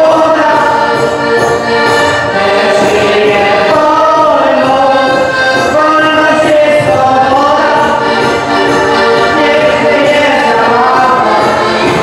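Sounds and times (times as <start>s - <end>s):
several voices singing together: 0.0s - 1.1s, 2.0s - 12.0s
band playing dance music: 0.0s - 12.0s.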